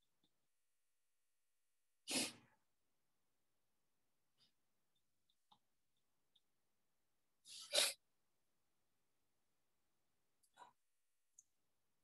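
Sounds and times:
person sneezing: 0:02.1 - 0:02.5.

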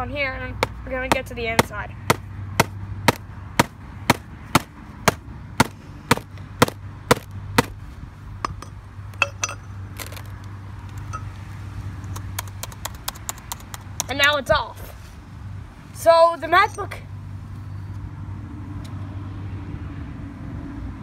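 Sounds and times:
hammer striking laptop lid: 0:02.1 - 0:07.7.

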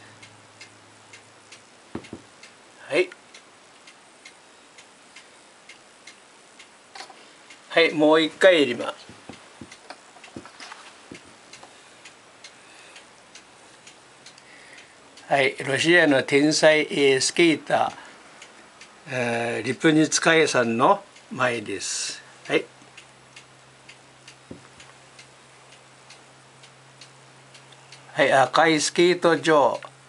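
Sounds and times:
faint regular ticking: 0:00.0 - 0:30.0
steady low hum: 0:00.0 - 0:30.0.

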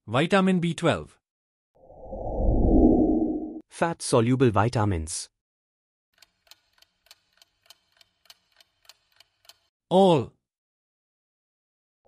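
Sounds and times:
clock ticking: 0:06.2 - 0:09.7.

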